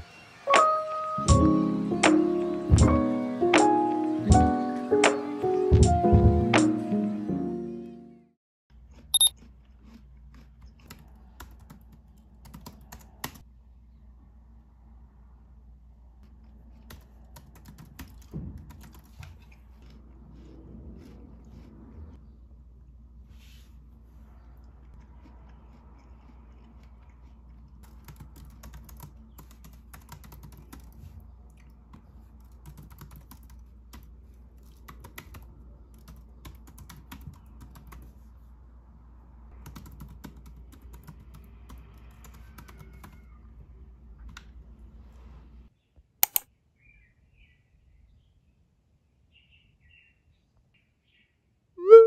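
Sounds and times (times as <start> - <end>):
laptop keyboard typing: 10.9 - 13.4, 16.8 - 19.2, 27.8 - 31.0, 32.4 - 38.1, 39.6 - 43.2
sharp loud clicks: 46.2 - 46.5.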